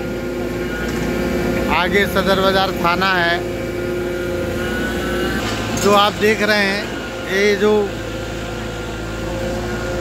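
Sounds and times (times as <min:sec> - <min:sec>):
excavator diesel engine running: 0:00.0 - 0:10.0
hydraulics whine: 0:00.0 - 0:10.0.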